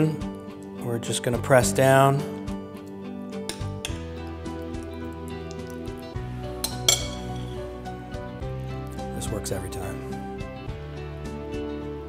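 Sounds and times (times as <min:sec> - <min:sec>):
soft background music: 0:00.0 - 0:12.0
metal spoon clinking on metal: 0:06.6 - 0:07.5.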